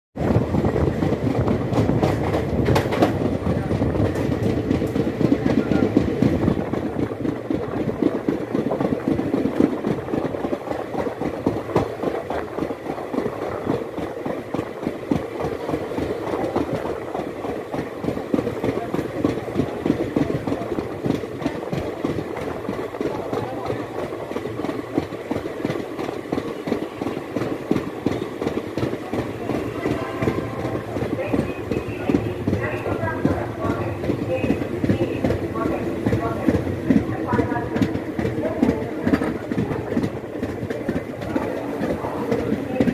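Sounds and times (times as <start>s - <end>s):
train wheels clattering over rail joints: 0.2s - 42.9s.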